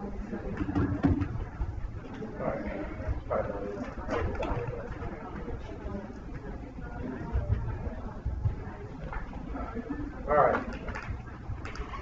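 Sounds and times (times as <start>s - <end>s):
low indistinct talk: 0.0s - 12.0s.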